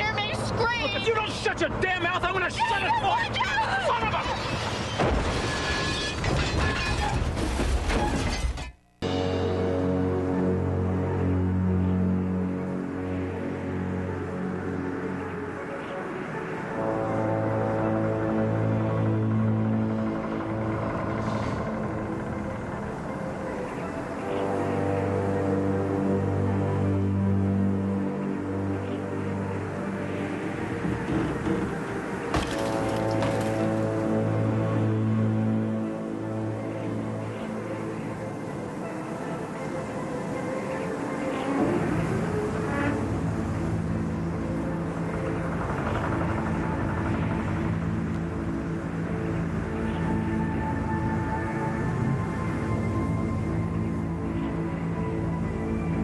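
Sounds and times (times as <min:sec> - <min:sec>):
car crash metal and glass shattering: 0:04.4 - 0:08.8, 0:32.3 - 0:33.8
ominous low score music: 0:08.9 - 0:56.0.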